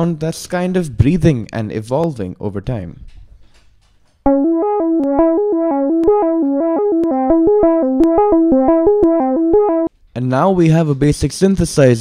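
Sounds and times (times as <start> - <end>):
synthesizer notes: 4.3 - 9.9.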